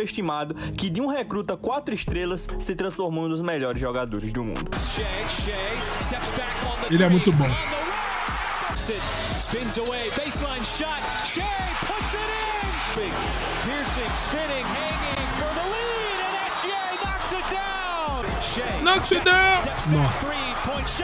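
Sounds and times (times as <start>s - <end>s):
music playing: 3.7s - 21.0s.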